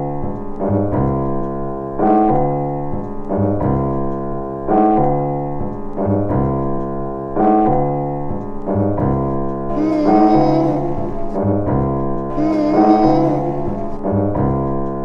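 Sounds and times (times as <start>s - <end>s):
hip hop beat with piano loop: 0.0s - 15.0s.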